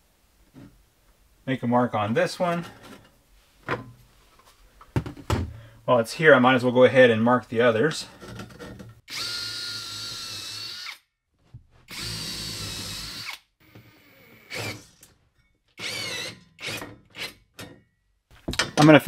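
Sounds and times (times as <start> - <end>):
cordless drill into wood: 9.1 - 11.0, 11.9 - 15.0, 15.8 - 17.4.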